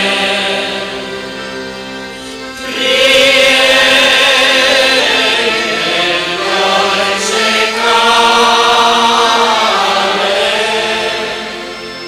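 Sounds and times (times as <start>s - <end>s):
many voices singing a hymn: 0.0s - 12.0s.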